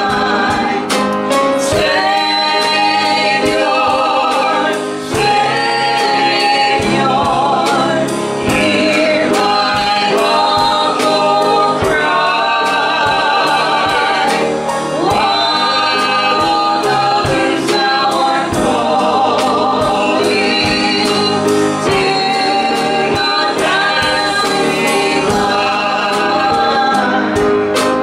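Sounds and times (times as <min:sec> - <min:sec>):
choir singing a gospel hymn: 0:00.0 - 0:28.0
drum kit beat: 0:00.0 - 0:28.0
woman singing lead: 0:00.0 - 0:28.0.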